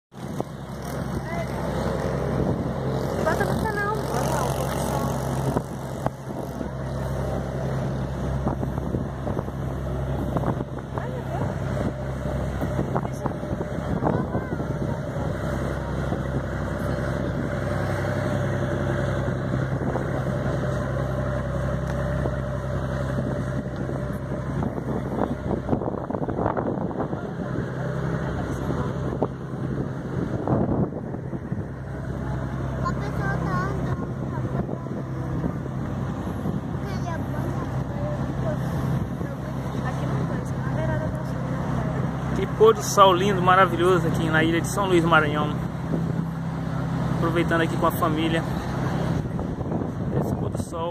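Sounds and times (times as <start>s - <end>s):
low engine drone: 0.0s - 50.9s.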